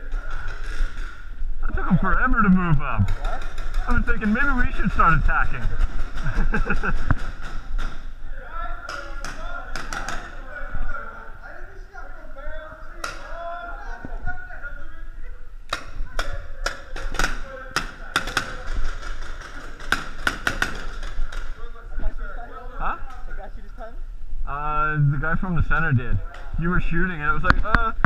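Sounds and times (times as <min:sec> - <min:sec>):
indistinct talk: 0:00.0 - 0:28.0
sharp taps and knocks: 0:15.7 - 0:21.5.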